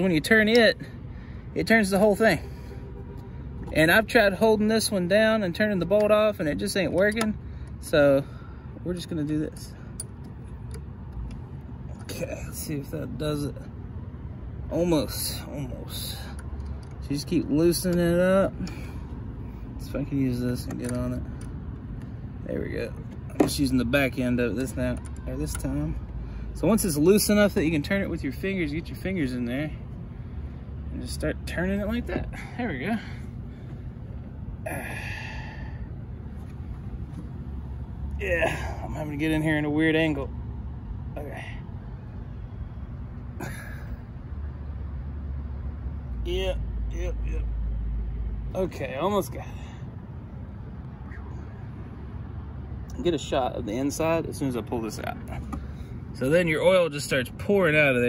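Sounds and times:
low steady rumble: 0.0 - 58.0
man sighing with effort: 34.6 - 35.9, 43.4 - 44.0.

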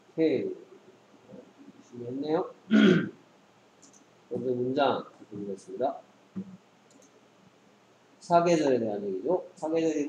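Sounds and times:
computer mouse click: 3.8 - 4.1, 6.4 - 7.2.

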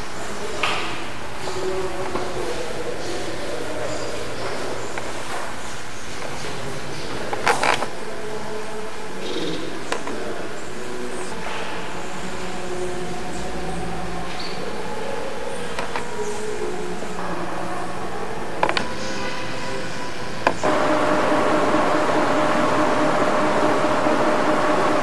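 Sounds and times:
faint indistinct voices: 0.0 - 25.0.

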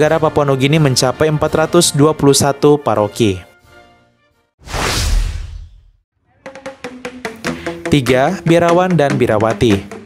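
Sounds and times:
whoosh sound effect: 4.6 - 6.0.

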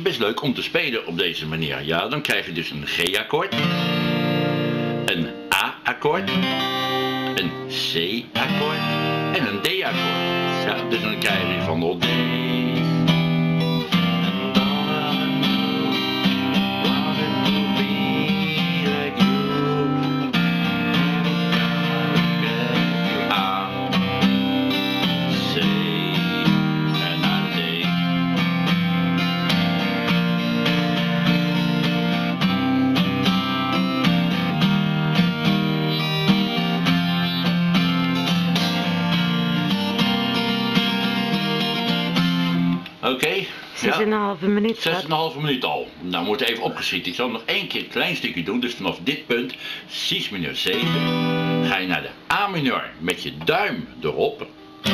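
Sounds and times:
acoustic guitar strumming chords: 2.9 - 54.9.

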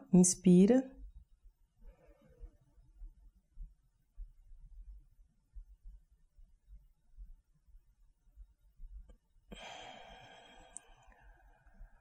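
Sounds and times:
woman exhaling slowly: 9.5 - 11.8.

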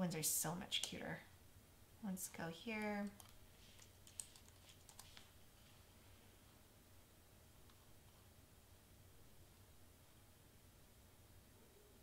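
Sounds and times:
computer keyboard typing: 2.8 - 5.3.

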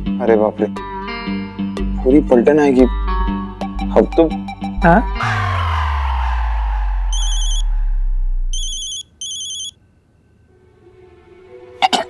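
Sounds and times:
deep background music: 0.0 - 8.8
mobile phone ringing: 8.6 - 9.8.

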